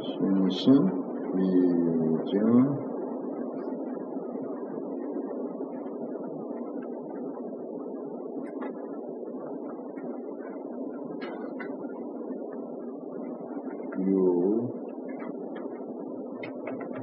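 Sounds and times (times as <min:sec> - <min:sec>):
rushing room noise: 0:00.0 - 0:17.0.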